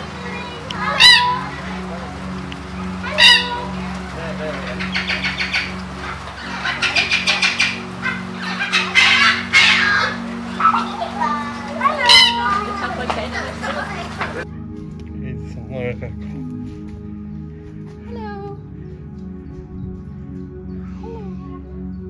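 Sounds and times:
birds calling: 0.0 - 14.5, 16.4 - 22.0
birds chattering: 0.0 - 14.5.

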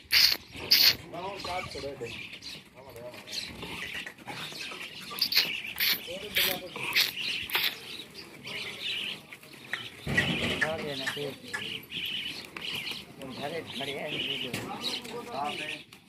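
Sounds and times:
small birds chirping: 0.0 - 16.0.

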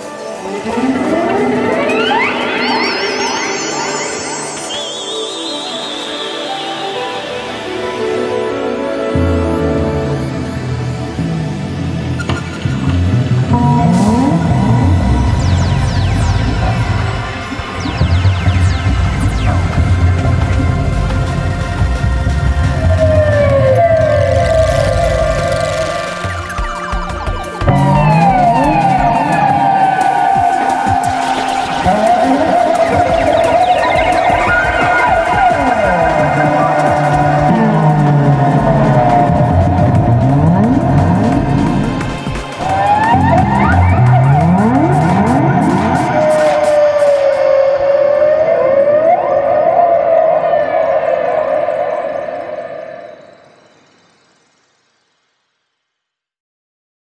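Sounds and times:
bowed double basses sliding notes: 9.2 - 46.2.

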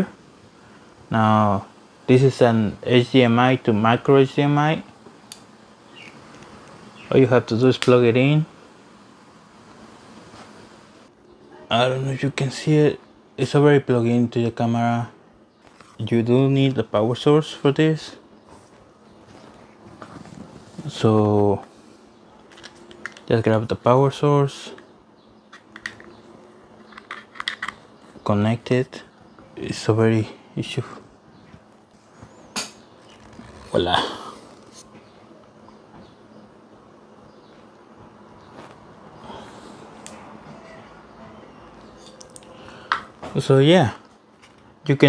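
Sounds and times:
faint background hiss: 0.0 - 45.0
device and cable handling: 22.4 - 23.3, 25.5 - 26.2, 26.8 - 27.9.

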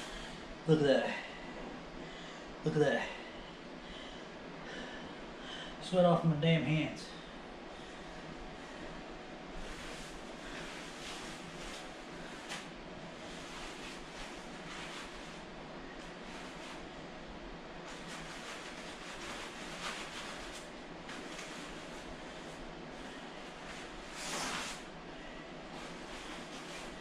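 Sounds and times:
steady room hiss: 0.0 - 27.0
plastic suit rustling: 9.5 - 17.1, 17.8 - 25.0, 25.6 - 27.0.

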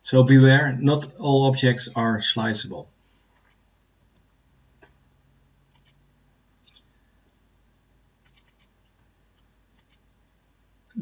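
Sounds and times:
computer mouse clicks: 5.7 - 6.0, 8.2 - 8.8, 9.7 - 10.1.

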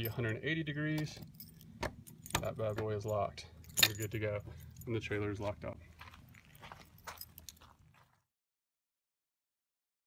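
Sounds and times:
keys clicking and rattling: 1.0 - 5.0, 6.3 - 7.7.

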